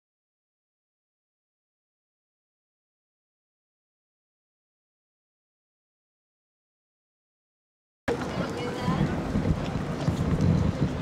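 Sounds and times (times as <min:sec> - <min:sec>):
faint voices: 0:08.1 - 0:11.0
wind buffeting microphone: 0:08.1 - 0:11.0.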